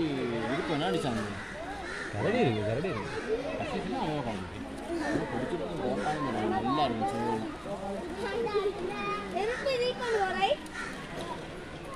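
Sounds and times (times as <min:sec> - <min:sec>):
children shouting and chattering: 0:00.0 - 0:11.9.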